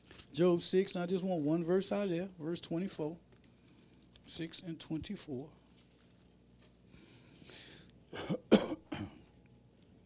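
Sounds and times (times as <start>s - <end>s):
man coughing: 8.1s - 9.3s.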